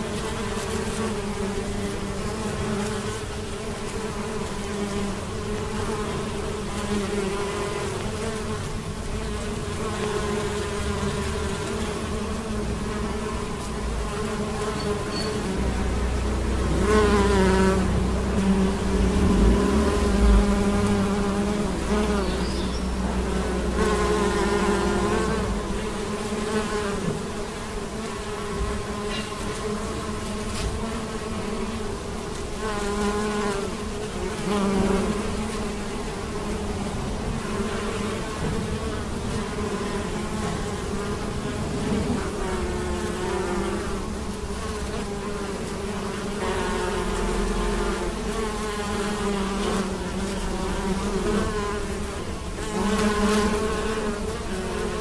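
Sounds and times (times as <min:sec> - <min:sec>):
bees buzzing: 0:00.0 - 0:55.0.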